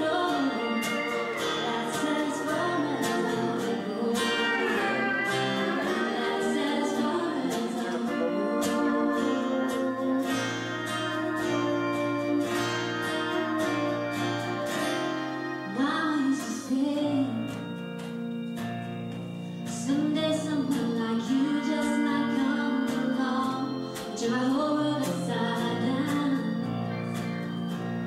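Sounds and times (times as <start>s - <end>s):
woman singing into microphone: 0.0s - 17.8s, 19.7s - 27.1s
long held instrumental notes: 0.0s - 28.0s
strummed acoustic guitar: 0.0s - 28.0s.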